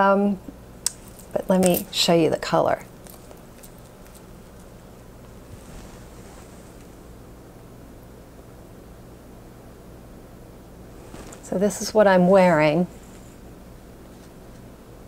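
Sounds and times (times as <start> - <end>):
steady low hum: 0.0 - 15.0
soft rustle: 3.0 - 7.0, 10.9 - 14.6.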